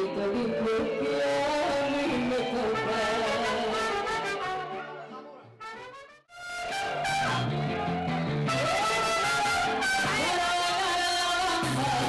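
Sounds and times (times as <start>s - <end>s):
mariachi band playing: 0.1s - 12.0s.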